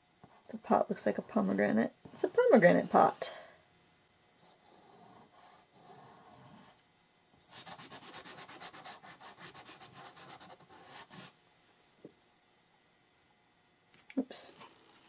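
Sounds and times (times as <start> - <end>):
pastel scraping on paper: 7.5 - 11.3.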